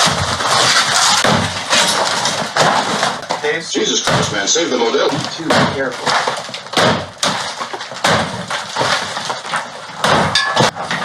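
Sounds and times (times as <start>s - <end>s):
wallboard cracking and crunching: 0.0s - 11.0s.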